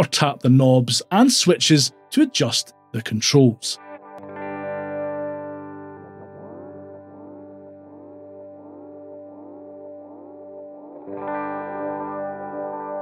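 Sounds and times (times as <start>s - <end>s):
clean electric guitar chord: 3.8s - 13.0s.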